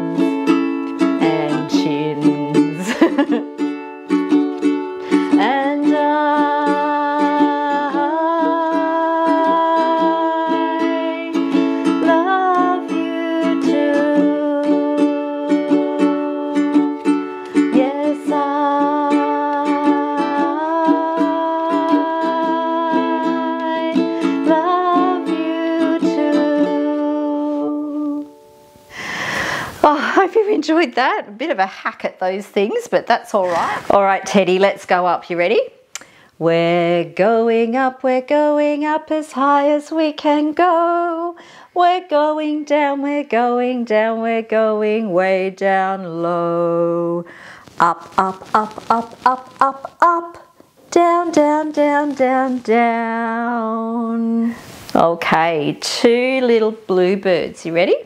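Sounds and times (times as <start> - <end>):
woman singing: 0.0 - 28.5, 33.4 - 35.6, 36.4 - 58.0
ukulele strumming: 0.0 - 29.8, 42.1 - 58.0
noisy rustle: 47.6 - 53.0.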